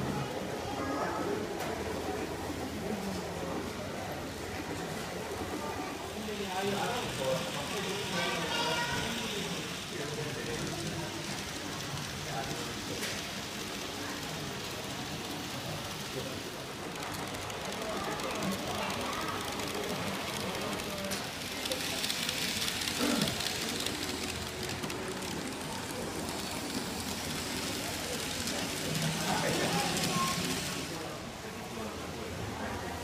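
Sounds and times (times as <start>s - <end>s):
model train rattling whir: 0.0s - 32.9s
faint voices of people: 0.0s - 33.0s.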